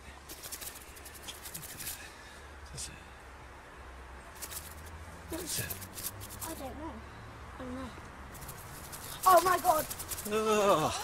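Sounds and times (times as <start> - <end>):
leaves and branches rustling: 0.2 - 2.2, 4.3 - 6.7, 8.3 - 11.0.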